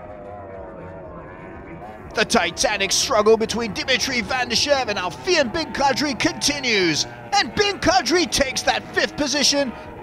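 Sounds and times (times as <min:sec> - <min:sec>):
distant outboard engines buzzing: 0:01.8 - 0:10.0.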